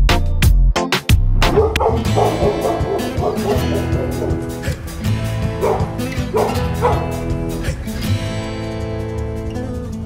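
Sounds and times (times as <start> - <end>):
background music with beat: 0.0 - 10.0
dog barking: 1.5 - 4.7, 5.4 - 7.3.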